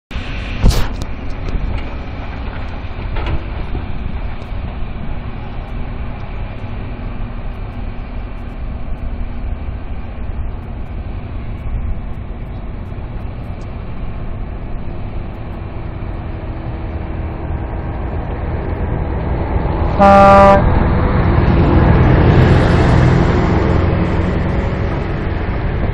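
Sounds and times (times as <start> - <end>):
diesel machinery rumbling: 0.1 - 25.9.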